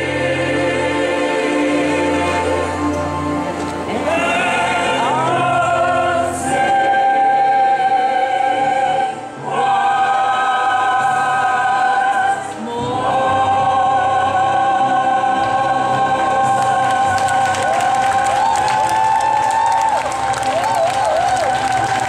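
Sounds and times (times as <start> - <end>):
choir singing sustained chords: 0.0 - 19.6
applause: 16.5 - 22.0.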